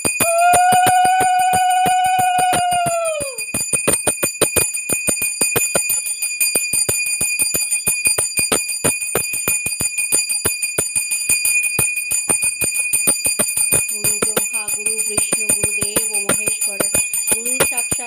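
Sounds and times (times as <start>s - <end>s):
hand bell rung rapidly: 0.0s - 18.0s.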